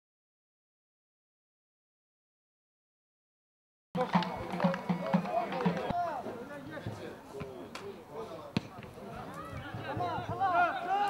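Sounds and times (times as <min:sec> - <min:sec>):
large drum beaten steadily: 0:04.0 - 0:06.0.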